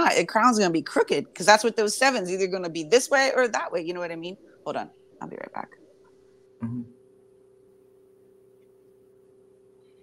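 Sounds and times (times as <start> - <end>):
steady low two-tone hum: 0.0 - 10.0.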